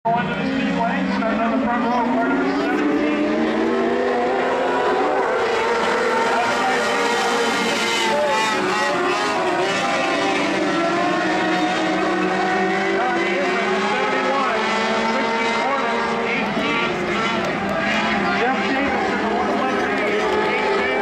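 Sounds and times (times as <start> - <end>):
race car engines: 0.1 - 21.0.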